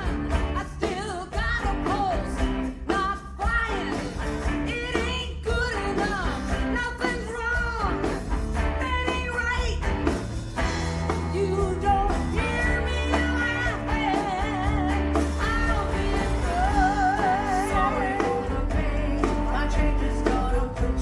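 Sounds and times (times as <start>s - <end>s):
electric guitar: 0.0s - 21.0s
steady bass line: 0.0s - 21.0s
woman singing lead: 0.0s - 21.0s.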